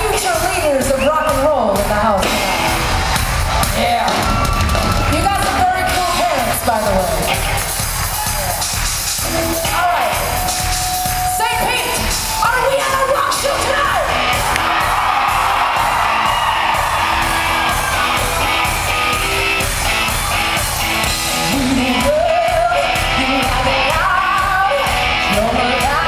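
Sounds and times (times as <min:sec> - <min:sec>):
live rock band playing: 0:00.0 - 0:26.0
crowd yelling: 0:02.2 - 0:26.0
woman singing lead: 0:21.3 - 0:26.0.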